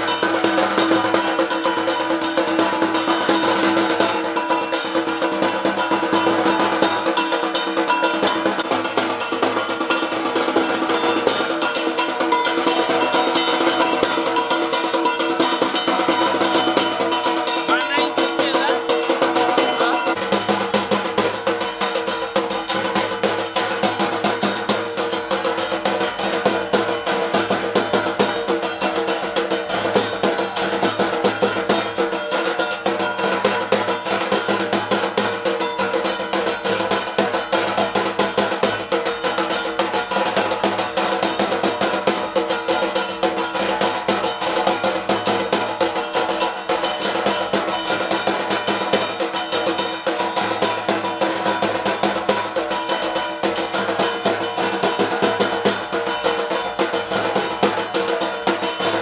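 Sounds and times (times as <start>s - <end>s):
steady ringing tones: 0.0s - 39.0s
barrel drum fast beat: 0.0s - 59.0s.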